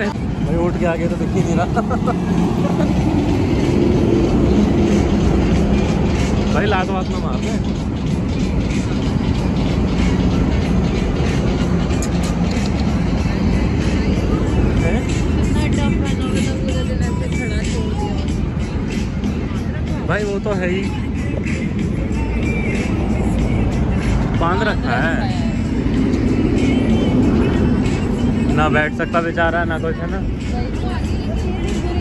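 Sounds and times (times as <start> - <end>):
background music: 0.0 - 32.0
road traffic drone: 0.0 - 32.0.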